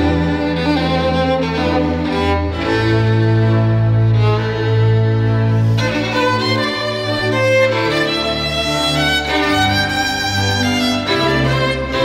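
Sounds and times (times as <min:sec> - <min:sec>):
low bowed string notes: 0:00.0 - 0:12.0
violin line: 0:00.0 - 0:12.0.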